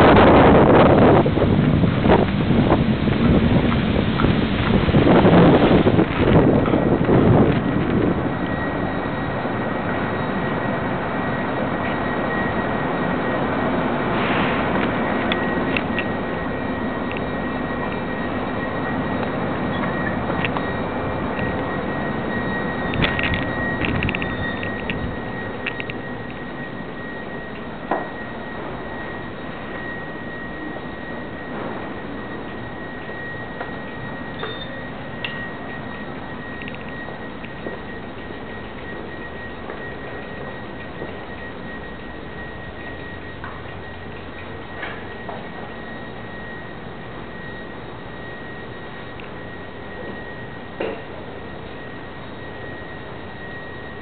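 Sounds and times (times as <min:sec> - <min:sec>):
wind buffeting microphone: 0:00.0 - 0:30.0
bicycle rolling and rattling: 0:00.0 - 0:54.0
faint constant high tone: 0:00.0 - 0:54.0.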